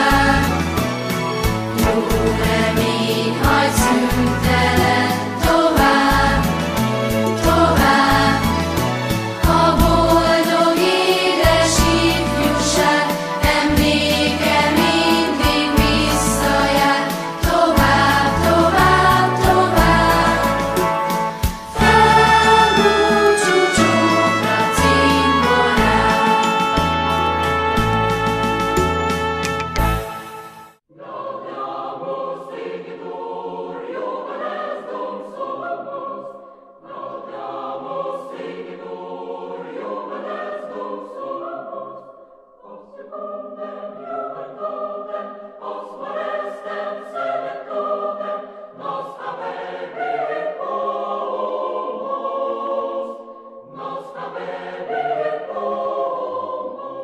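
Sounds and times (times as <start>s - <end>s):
choir singing slow song: 0.0s - 27.5s, 30.9s - 57.0s.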